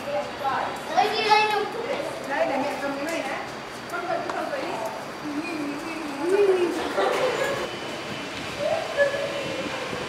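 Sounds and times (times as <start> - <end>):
steady background noise: 0.0 - 10.0.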